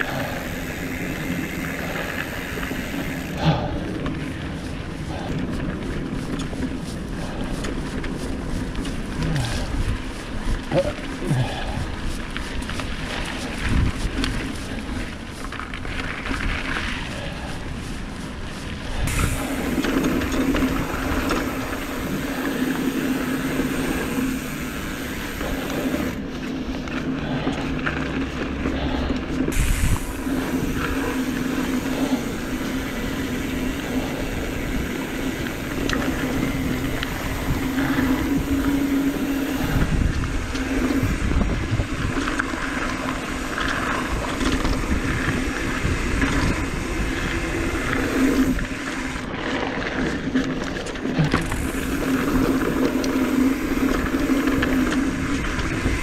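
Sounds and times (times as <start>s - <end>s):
bike rattling: 0.0s - 56.0s
bike tyres rushing on dirt: 0.0s - 56.0s.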